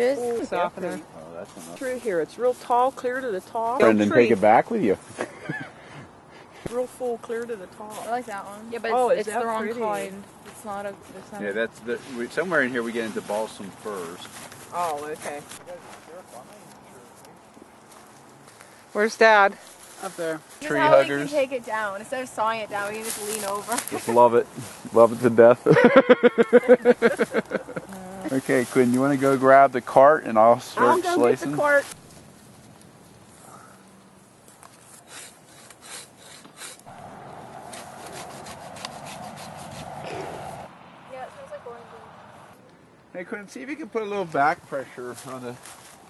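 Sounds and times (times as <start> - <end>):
outdoor background hiss: 0.0 - 46.0
hand saw cutting tree trunk: 35.0 - 36.9, 37.7 - 40.2.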